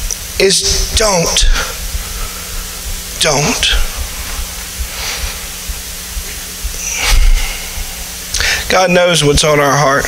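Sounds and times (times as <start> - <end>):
microphone hiss and hum: 0.0 - 10.0
low thump with rush of noise: 0.7 - 8.1.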